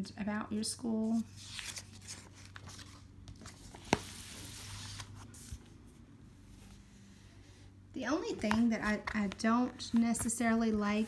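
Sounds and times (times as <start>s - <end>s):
paper pages rustling: 1.1s - 5.7s.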